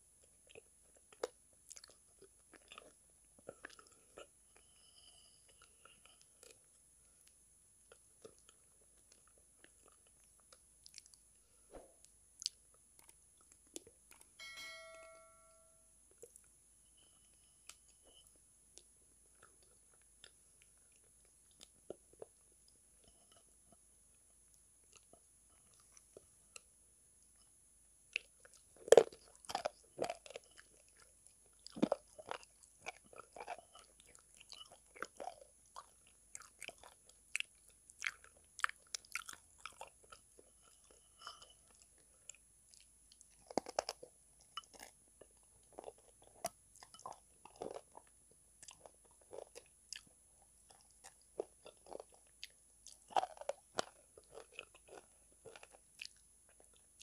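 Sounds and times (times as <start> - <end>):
wet sticky chewing with crunches: 0.1 - 14.3, 17.6 - 57.0.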